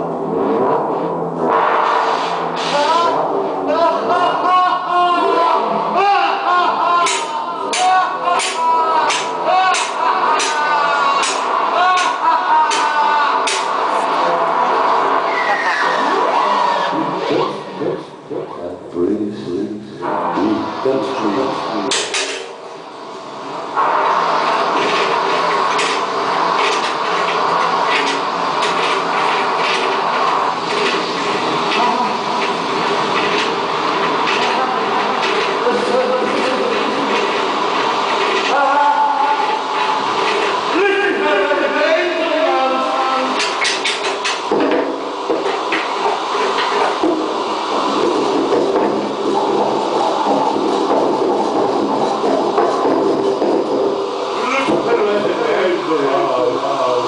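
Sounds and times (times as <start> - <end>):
electronic drone of held tones: 0.0 - 4.2
electronic noise din: 0.0 - 4.6, 6.9 - 57.0
noisy hiss: 0.0 - 57.0
clattering hits: 21.9 - 22.6, 23.8 - 38.5, 43.4 - 55.0.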